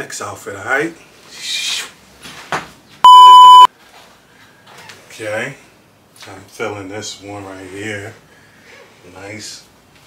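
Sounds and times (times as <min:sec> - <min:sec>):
electronic bleep tone: 0:03.1 - 0:03.7.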